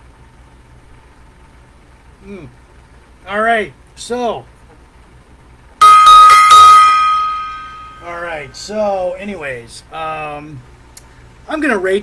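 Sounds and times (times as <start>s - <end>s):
small brass gong ringing: 5.8s - 8.6s.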